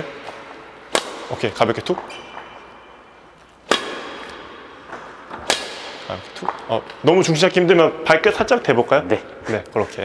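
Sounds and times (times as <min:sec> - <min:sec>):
racket hitting shuttlecock: 0:00.1 - 0:07.0.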